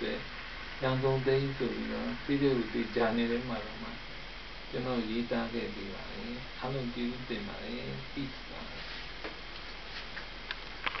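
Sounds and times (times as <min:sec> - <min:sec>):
background hiss and low hum: 0:00.0 - 0:11.0.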